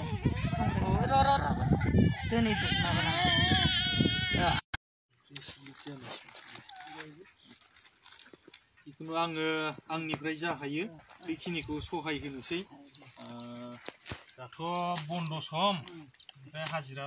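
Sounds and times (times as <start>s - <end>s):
infant crying: 1.8s - 4.6s.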